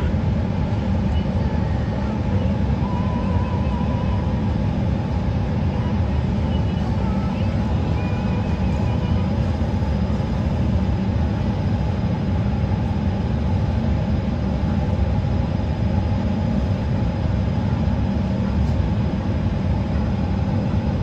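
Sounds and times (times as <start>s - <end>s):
airliner cabin rumble: 0.0s - 21.0s.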